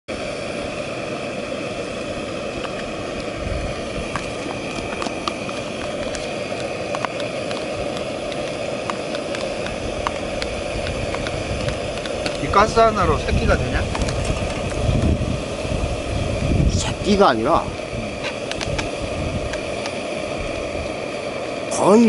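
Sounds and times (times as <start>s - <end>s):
gas stove burner hissing: 0.1s - 22.0s.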